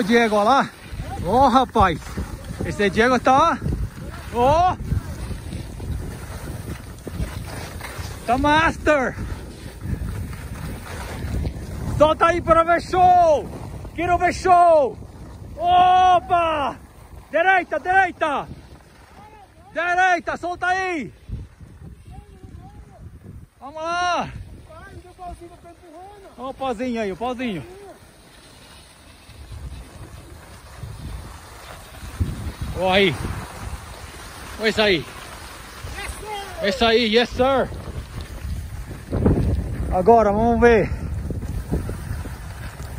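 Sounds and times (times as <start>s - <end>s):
wind rushing over microphone: 0.0s - 28.3s, 29.1s - 42.9s
boards sliding on snow: 0.0s - 42.9s.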